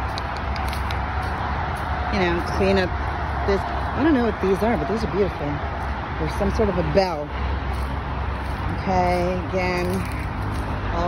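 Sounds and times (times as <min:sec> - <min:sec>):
road traffic rumble: 0:00.0 - 0:11.0.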